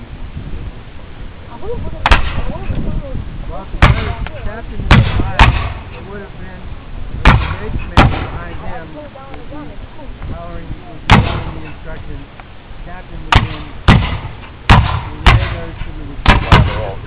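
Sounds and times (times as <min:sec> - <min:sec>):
musket shots: 0:02.0 - 0:02.5, 0:03.8 - 0:04.2, 0:04.9 - 0:06.0, 0:07.2 - 0:08.4, 0:11.1 - 0:11.8, 0:13.3 - 0:17.0.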